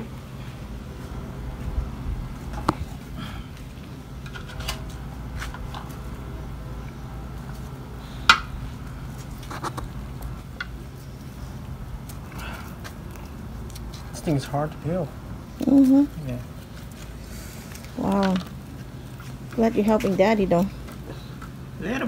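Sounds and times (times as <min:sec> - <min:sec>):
steady low hum: 0:00.0 - 0:22.0.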